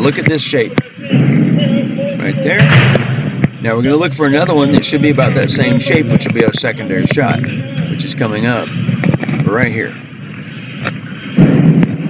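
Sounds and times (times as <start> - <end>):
background noise: 0.0 - 12.0.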